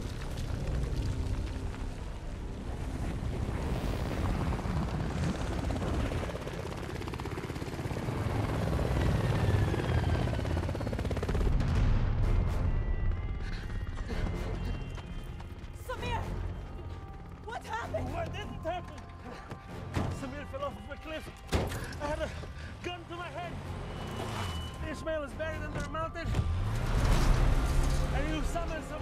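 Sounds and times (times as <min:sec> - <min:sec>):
helicopter rotors beating: 0:00.0 - 0:29.0
background music: 0:10.8 - 0:29.0.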